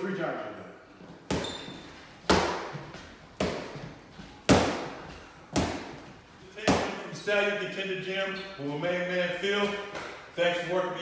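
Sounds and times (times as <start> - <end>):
boxing gloves smacking mitts: 1.2 - 7.1.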